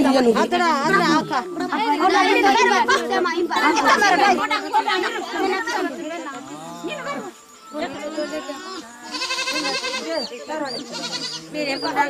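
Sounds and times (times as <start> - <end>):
crowd calling and shouting: 0.0 - 12.0.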